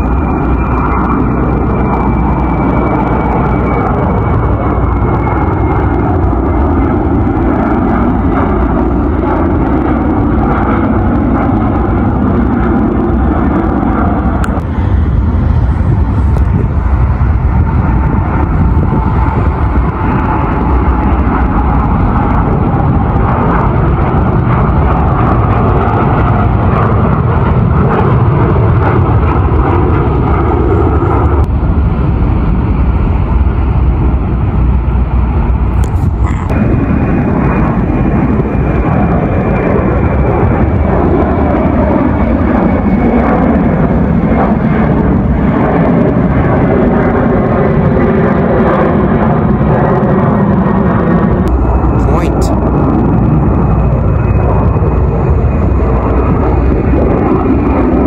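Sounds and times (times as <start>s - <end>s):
jet engines roaring: 0.0s - 58.0s.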